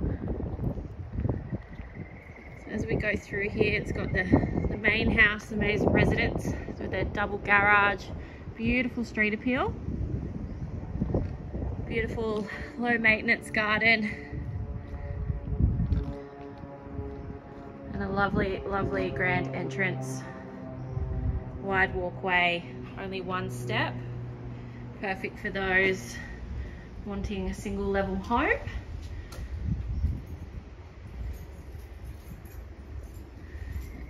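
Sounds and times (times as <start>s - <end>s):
wind rumbling on microphone: 0.0s - 34.0s.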